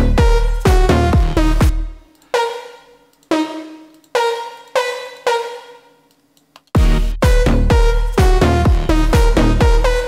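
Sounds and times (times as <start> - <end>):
synth lead notes: 0.0 - 6.1.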